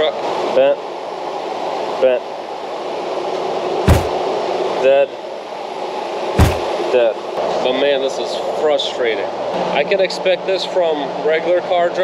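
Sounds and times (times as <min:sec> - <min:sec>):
sharp knocks: 0:03.9 - 0:04.2, 0:06.4 - 0:06.7.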